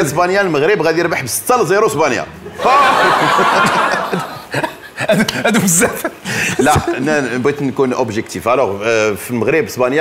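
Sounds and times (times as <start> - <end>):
man chuckling: 2.7 - 7.1
man speaking: 5.0 - 10.0.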